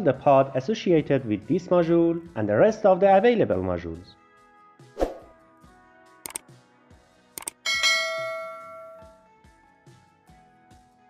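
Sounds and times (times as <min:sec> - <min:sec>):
quick clicks: 0:07.4 - 0:07.6
bright bell chime: 0:07.6 - 0:09.2.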